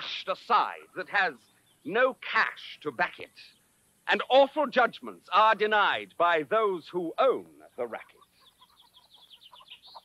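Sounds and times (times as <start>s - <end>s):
faint bird chirping: 0.6s - 10.0s.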